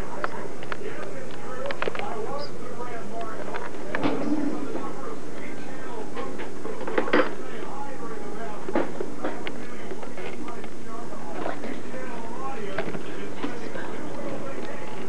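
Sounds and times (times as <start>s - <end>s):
indistinct voices talking: 0.0s - 15.0s.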